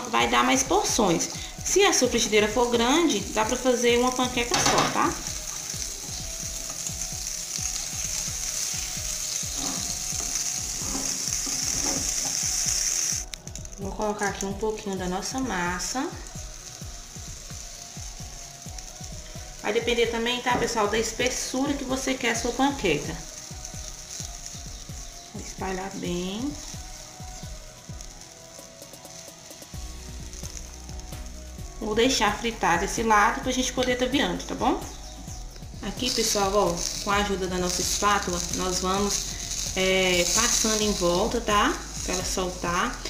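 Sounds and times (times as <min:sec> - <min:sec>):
background music with low beat: 0:00.0 - 0:43.0
butter sizzling in frying pan: 0:00.0 - 0:43.0.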